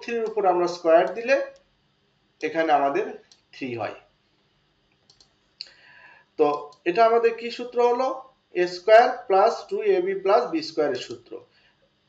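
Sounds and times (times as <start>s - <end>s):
faint short clicks: 4.9s - 5.8s.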